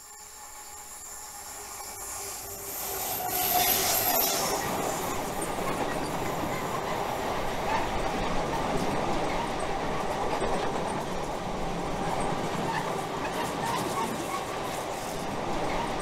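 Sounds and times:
freight train passing: 0:00.0 - 0:16.0
wheel squeal: 0:00.6 - 0:07.1.

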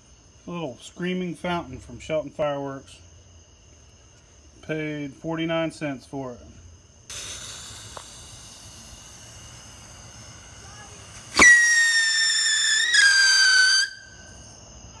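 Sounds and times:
fuse hissing: 0:07.0 - 0:14.2
firework shrill whistle: 0:07.1 - 0:14.4.

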